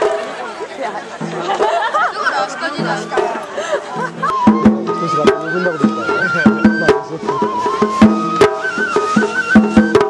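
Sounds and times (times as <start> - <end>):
crowd talking and shouting: 0.0 - 10.0
festival music: 0.0 - 10.0.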